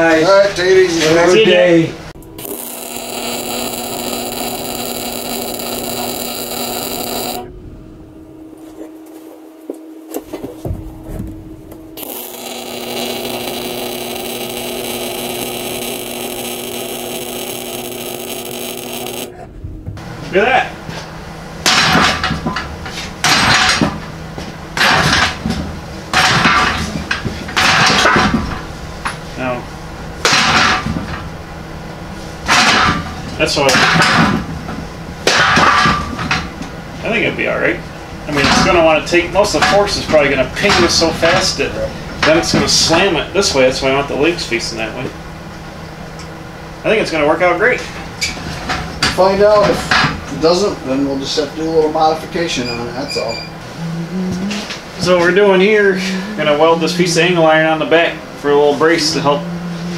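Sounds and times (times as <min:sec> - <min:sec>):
welder running: 0:02.2 - 0:07.6, 0:12.0 - 0:19.4, 0:54.5 - 0:59.9.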